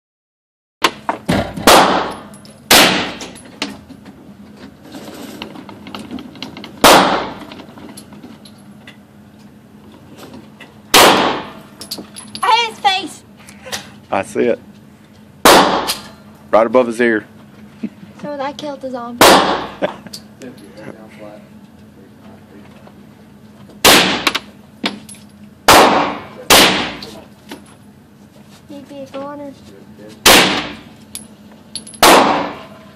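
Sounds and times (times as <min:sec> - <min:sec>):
loud gunshot: 0:01.6 - 0:03.2, 0:06.8 - 0:07.4, 0:10.9 - 0:11.6, 0:15.4 - 0:16.0, 0:19.2 - 0:19.8, 0:23.8 - 0:24.4, 0:25.7 - 0:27.0, 0:30.2 - 0:30.8, 0:32.0 - 0:32.7
echo of enclosed range: 0:01.6 - 0:03.4, 0:10.9 - 0:12.0, 0:15.4 - 0:16.2, 0:19.2 - 0:19.9, 0:25.6 - 0:27.2, 0:30.2 - 0:30.9, 0:31.8 - 0:32.9
gunshots echoing indoors: 0:32.0 - 0:32.6.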